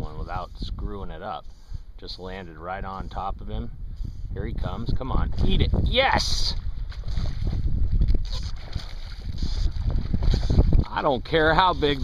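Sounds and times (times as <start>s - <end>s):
wind rumbling on microphone: 0.0s - 12.0s
fish splashing in water: 6.8s - 10.8s.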